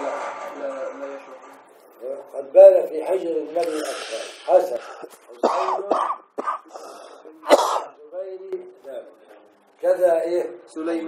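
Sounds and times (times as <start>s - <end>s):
man coughing: 5.4s - 8.0s.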